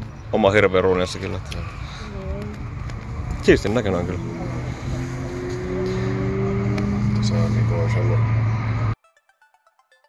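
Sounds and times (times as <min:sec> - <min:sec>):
car engine droning: 0:00.0 - 0:09.0.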